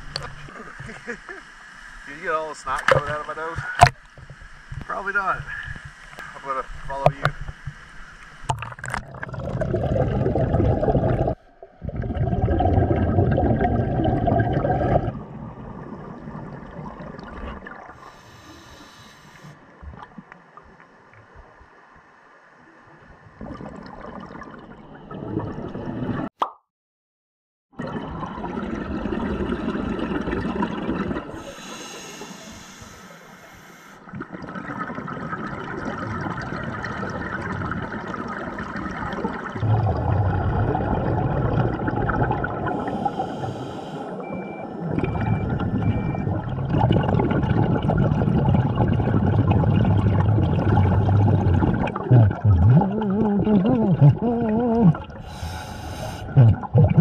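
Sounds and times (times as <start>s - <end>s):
exhaled bubbles gurgling: 8.5s - 18.2s, 23.3s - 26.3s, 27.8s - 57.0s
diver breathing through regulator: 18.0s - 19.6s, 31.4s - 34.1s, 42.6s - 44.4s, 55.2s - 56.7s.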